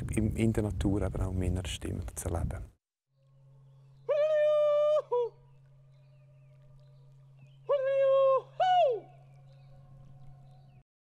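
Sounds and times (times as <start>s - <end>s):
person giving wordless alpine calls: 4.0s - 5.4s, 7.6s - 9.3s.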